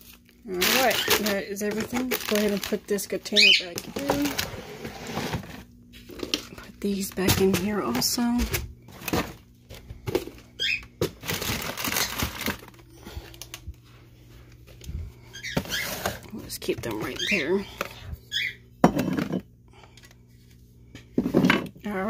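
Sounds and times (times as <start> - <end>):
plastic bins rustling and scraping: 0.0 - 18.2.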